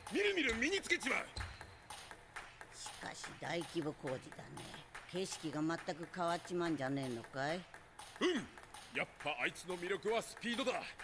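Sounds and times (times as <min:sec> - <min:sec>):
table tennis ball pings: 0:00.0 - 0:11.0
people talking: 0:00.1 - 0:01.4, 0:02.8 - 0:07.6, 0:08.2 - 0:11.0.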